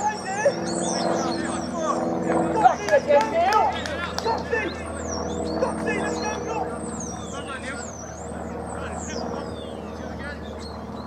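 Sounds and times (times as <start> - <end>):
distant voices of players: 0.0 - 11.0.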